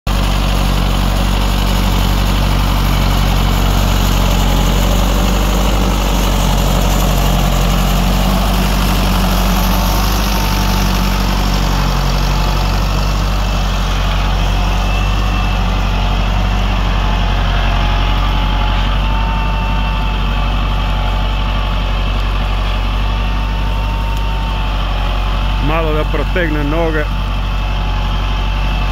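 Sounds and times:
tractor diesel engine under load: 0:00.0 - 0:28.9.

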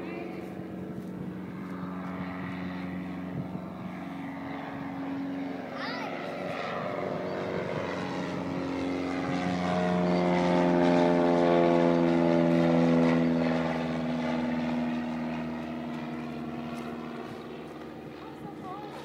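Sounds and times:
small plane engine and propeller: 0:00.0 - 0:19.0.

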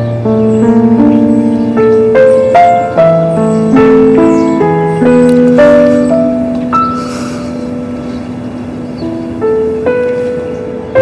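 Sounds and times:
soft slow piano: 0:00.0 - 0:11.0.

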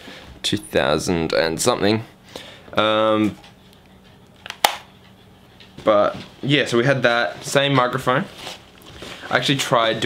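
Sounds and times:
camcorder clicks: 0:04.4 - 0:04.9.

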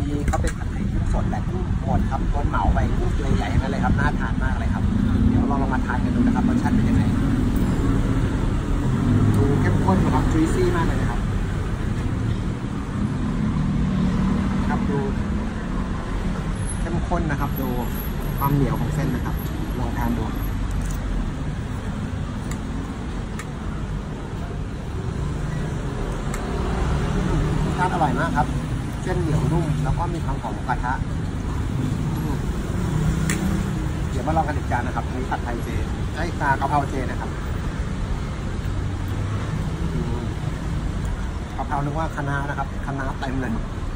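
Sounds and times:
man speaking: 0:00.0 - 0:07.4, 0:09.2 - 0:11.4, 0:26.6 - 0:31.2, 0:34.0 - 0:37.6
road traffic rumble: 0:00.0 - 0:43.9.

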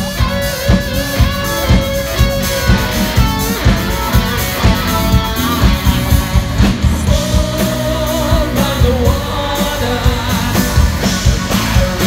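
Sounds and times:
live rock band: 0:00.0 - 0:12.0
person singing: 0:07.1 - 0:12.0.

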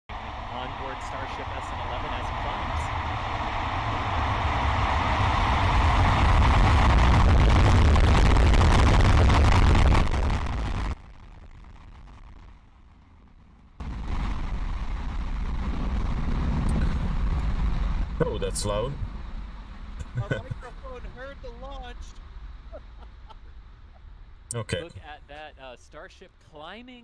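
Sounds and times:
rocket engines roaring: 0:00.1 - 0:11.0, 0:13.8 - 0:23.9, 0:24.5 - 0:26.9.

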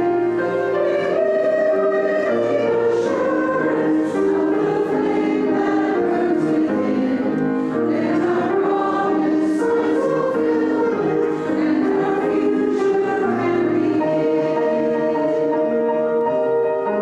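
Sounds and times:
congregation singing a hymn: 0:00.0 - 0:17.0.

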